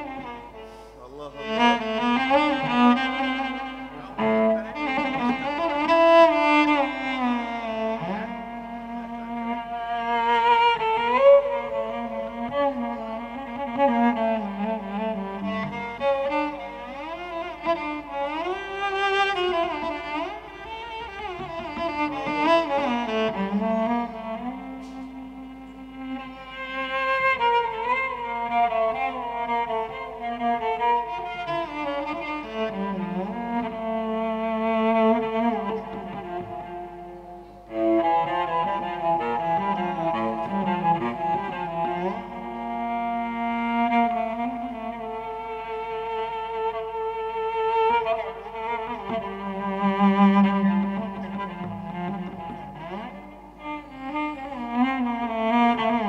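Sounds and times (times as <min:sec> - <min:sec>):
cello and bowed strings melody: 0:00.0 - 0:56.0.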